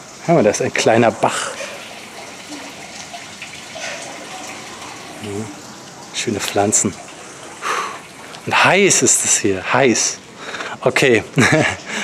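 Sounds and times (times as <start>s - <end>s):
stream water running: 0.0s - 12.0s.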